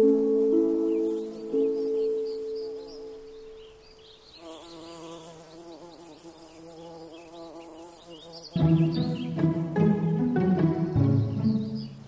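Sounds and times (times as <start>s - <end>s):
bumblebee buzzing: 0.0s - 3.6s, 4.3s - 9.9s
faint bird chirps: 0.0s - 9.6s.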